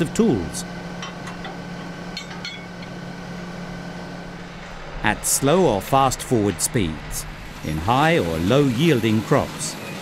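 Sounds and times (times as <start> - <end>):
steady low hum: 0.0 - 8.9.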